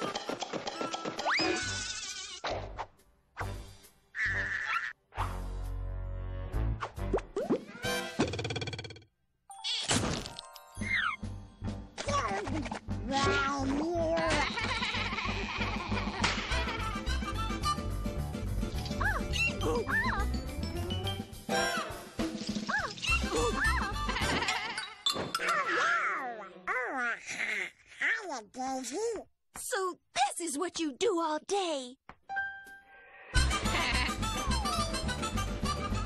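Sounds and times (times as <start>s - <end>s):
cartoon score music: 4.1s - 8.8s, 10.8s - 26.6s, 32.9s - 36.0s
squeaky cartoon character yelps: 4.2s - 5.0s, 19.0s - 20.2s, 22.7s - 28.2s.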